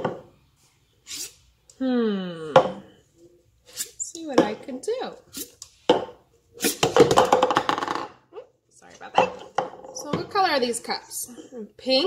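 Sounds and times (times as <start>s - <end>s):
plastic cups clattering on countertop: 6.8s - 8.3s.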